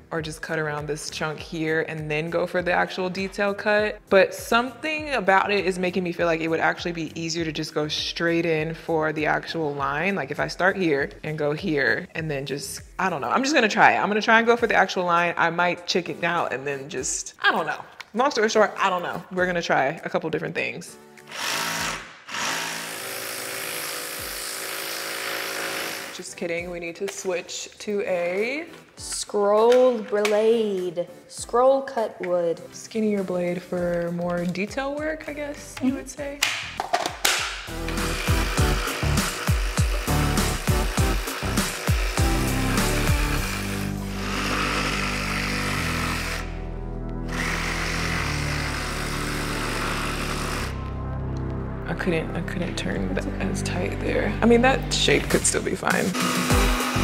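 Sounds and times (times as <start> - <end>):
background music: 0.0 - 57.0
jigsaw cutting plywood: 21.3 - 26.2, 37.7 - 46.6, 47.2 - 50.8, 56.1 - 57.0.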